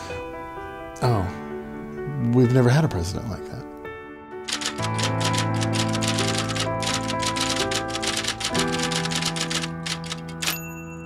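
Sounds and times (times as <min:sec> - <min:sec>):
typewriter keys clicking: 0:04.5 - 0:10.6.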